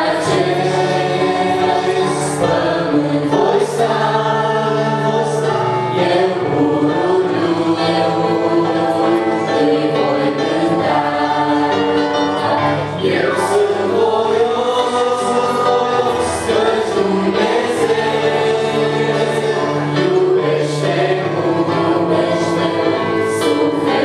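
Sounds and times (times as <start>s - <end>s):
digital piano: 0.0s - 24.0s
group singing in harmony: 0.0s - 24.0s.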